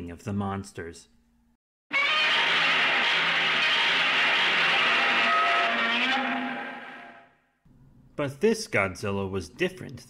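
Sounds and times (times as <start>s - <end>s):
monster screeching roar: 1.9s - 7.3s.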